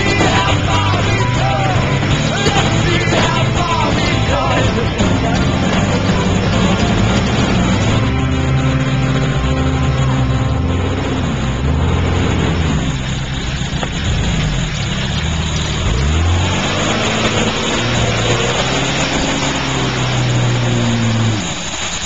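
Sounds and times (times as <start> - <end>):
road noise: 0.0 - 22.0
vehicle engine running: 0.0 - 22.0.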